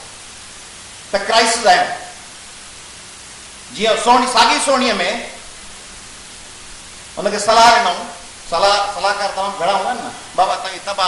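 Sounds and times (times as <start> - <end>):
steady hiss: 0.0 - 11.0
man speaking into microphones: 1.1 - 2.2, 3.7 - 5.5, 7.2 - 11.0.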